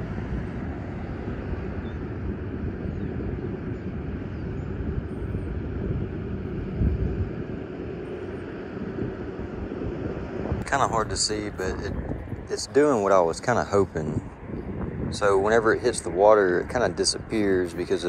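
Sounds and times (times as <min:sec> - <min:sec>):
low outdoor rumble: 0:00.0 - 0:18.0.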